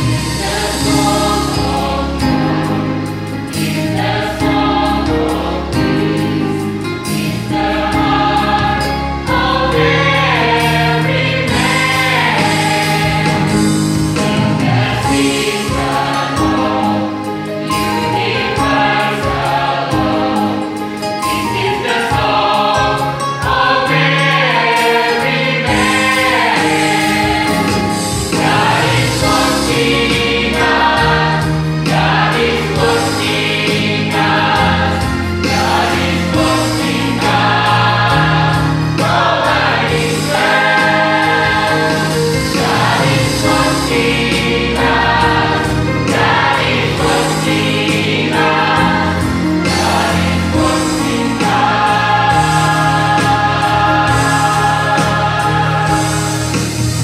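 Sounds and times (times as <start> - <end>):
mixed choir singing gospel: 0.0 - 57.0.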